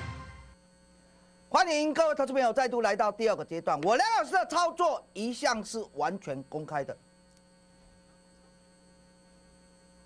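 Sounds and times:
theme music: 0.0s - 0.6s
faint electrical hum: 0.0s - 10.0s
man speaking: 1.5s - 7.0s.

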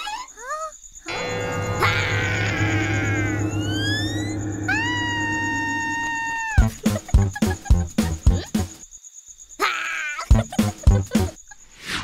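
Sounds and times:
high wailing note: 1.1s - 6.8s
low droning chord with glides: 1.1s - 6.8s.

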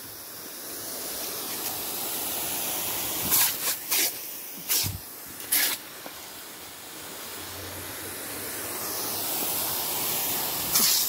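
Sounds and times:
lawn sprinkler spraying water: 0.0s - 11.0s.

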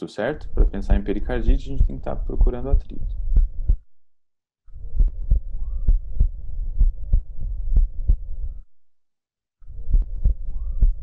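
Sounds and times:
heartbeat through stethoscope: 0.4s - 3.8s, 4.8s - 8.7s, 9.7s - 11.0s.

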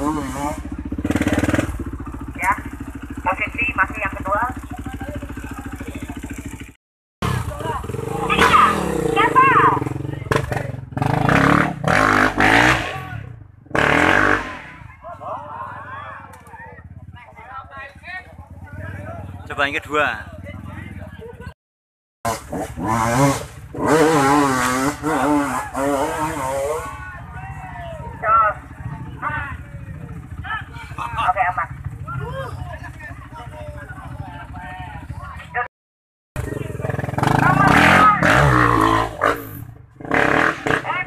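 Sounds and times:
motorcycle engine running: 0.0s - 21.5s, 22.3s - 35.7s, 36.4s - 41.0s
voices: 2.2s - 6.6s, 7.2s - 11.0s, 14.4s - 21.6s, 24.9s - 35.7s, 36.4s - 40.0s, 40.6s - 41.0s
people shouting: 8.2s - 9.8s, 25.0s - 28.6s, 30.4s - 32.8s.

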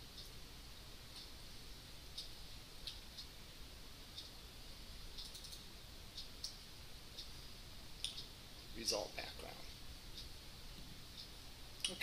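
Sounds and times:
computer controls clicking: 5.2s - 6.6s.

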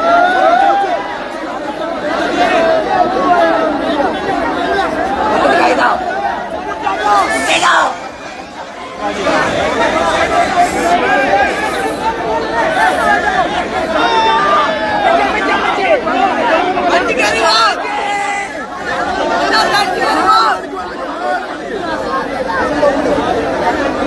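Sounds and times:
crowd of men shouting: 0.0s - 24.0s.

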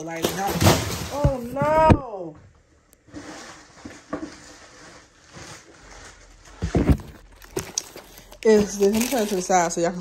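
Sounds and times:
wrapped packs rustling: 3.0s - 10.0s.

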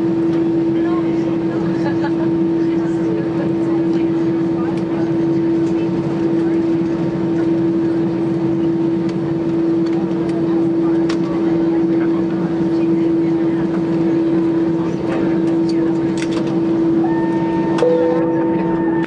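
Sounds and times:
aircraft cabin noise: 0.0s - 19.0s
constant hum: 0.0s - 19.0s.

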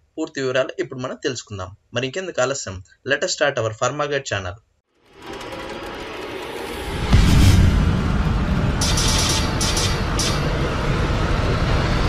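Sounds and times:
rushing whoosh: 5.1s - 12.0s.

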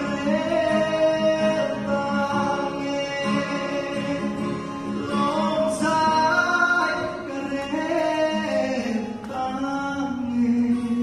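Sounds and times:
guitar accompaniment: 0.0s - 11.0s
man singing into microphone: 0.0s - 11.0s.

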